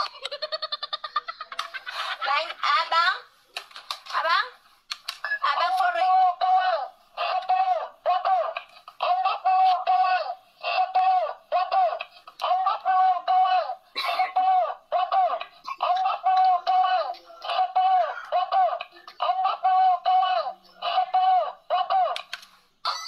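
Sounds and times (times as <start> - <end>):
woman laughing and talking: 1.4 - 3.2.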